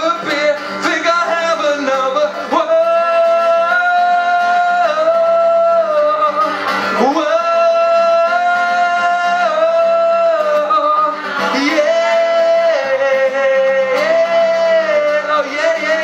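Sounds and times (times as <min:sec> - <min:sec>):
man singing: 0:00.0 - 0:16.0
strummed acoustic guitar: 0:00.0 - 0:16.0.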